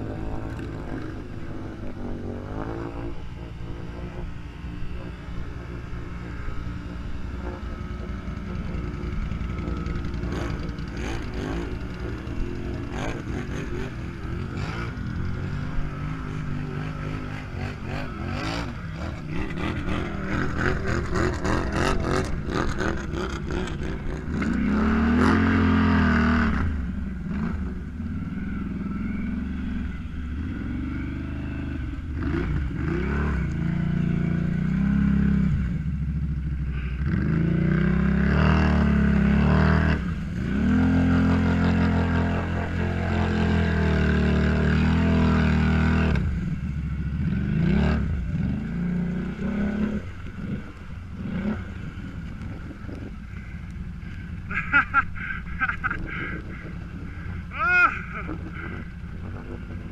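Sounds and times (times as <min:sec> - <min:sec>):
atv engines revving: 0:00.0 - 0:59.9.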